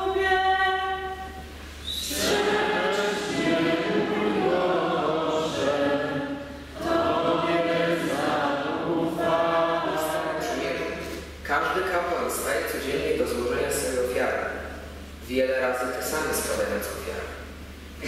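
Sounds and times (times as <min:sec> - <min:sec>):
congregation singing unaccompanied: 0:01.8 - 0:13.4.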